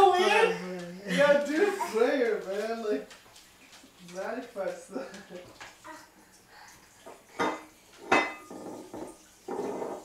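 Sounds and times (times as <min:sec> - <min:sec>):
dishes and cutlery clattering: 0:07.0 - 0:10.0.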